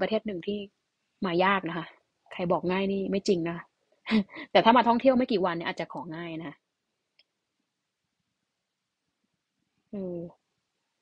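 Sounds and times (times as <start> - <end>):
woman speaking: 0.0 - 6.6, 10.0 - 10.3.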